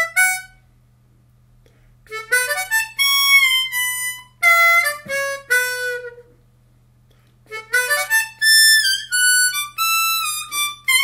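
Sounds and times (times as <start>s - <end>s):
harmonica single notes: 0.0s - 0.7s, 2.0s - 6.4s, 7.4s - 11.0s.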